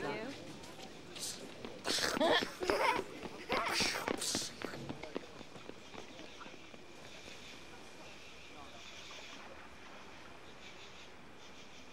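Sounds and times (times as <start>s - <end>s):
footsteps on patio: 0.0s - 7.7s
faint background voices: 0.0s - 10.7s
children laughing and shouting: 1.9s - 4.8s.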